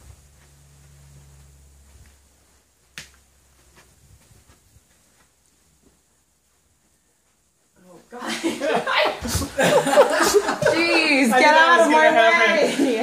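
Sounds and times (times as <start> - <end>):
low hum: 0.0 - 7.6.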